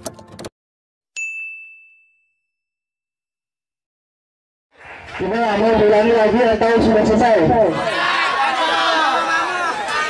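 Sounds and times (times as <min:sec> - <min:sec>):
bright chime ding: 0:01.2 - 0:02.6.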